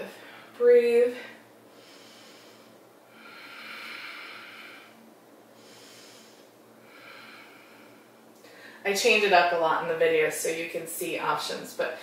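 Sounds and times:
woman breathing deeply: 0.1s - 0.6s, 1.2s - 8.9s.

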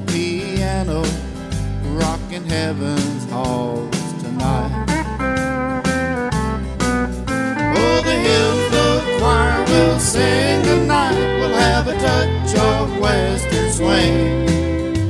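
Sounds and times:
country band playing: 0.0s - 15.0s
sliding lead instrument notes: 4.5s - 15.0s.

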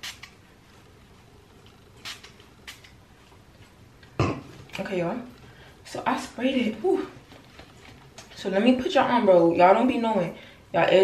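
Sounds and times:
spray bottle hissing: 0.0s - 0.4s, 1.9s - 3.0s.

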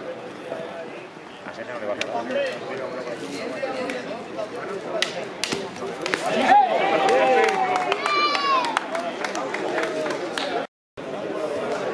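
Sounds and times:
men's voices chattering: 0.0s - 8.0s, 8.9s - 11.9s.

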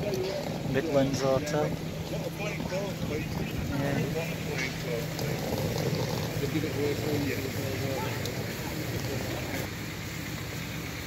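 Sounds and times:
indistinct voices: 0.0s - 9.7s
city street rumble: 0.0s - 11.0s.

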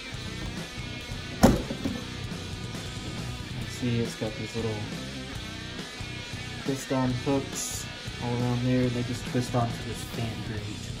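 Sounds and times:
guitar music: 0.0s - 8.2s
sharp knock: 1.4s - 2.0s.

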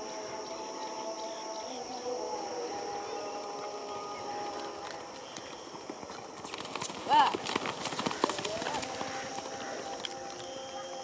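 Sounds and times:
horse hooves galloping on dirt: 3.0s - 11.0s.

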